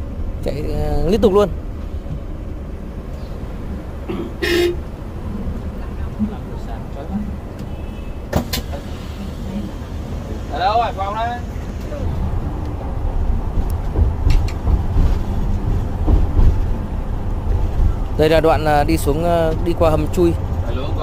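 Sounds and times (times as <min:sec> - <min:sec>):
bus engine and road rumble: 0:00.0 - 0:21.0.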